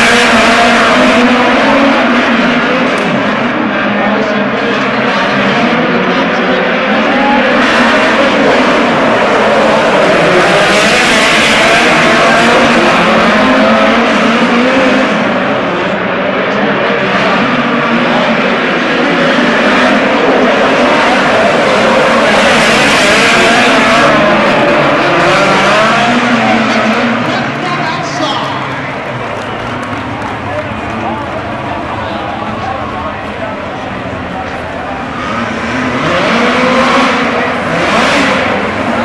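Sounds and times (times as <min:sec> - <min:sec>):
race car engines revving: 0:00.0 - 0:39.0.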